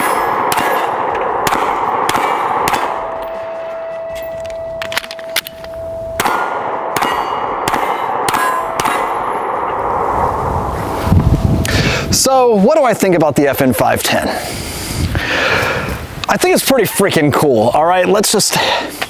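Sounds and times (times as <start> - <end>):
metallic ring: 0.0 - 0.4, 2.9 - 7.6, 8.3 - 9.2
pistol shots: 0.0 - 4.0, 6.2 - 9.8
bullets clanging off steel targets: 0.0 - 9.6.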